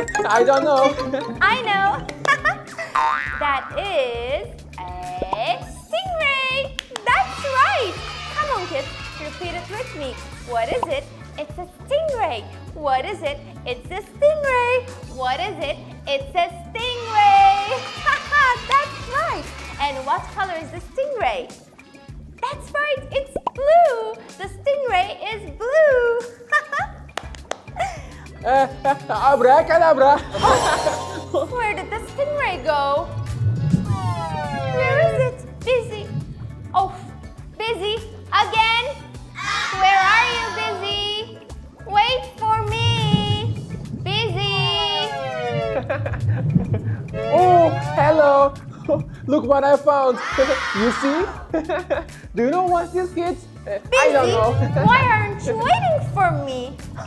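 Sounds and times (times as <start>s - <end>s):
bright children's music: 0.0s - 57.0s
pulsing bass line: 42.2s - 49.7s, 54.0s - 57.0s.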